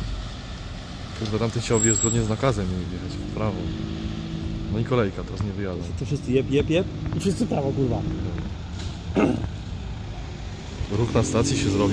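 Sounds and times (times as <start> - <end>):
low rumble of car engines: 0.0 - 11.9.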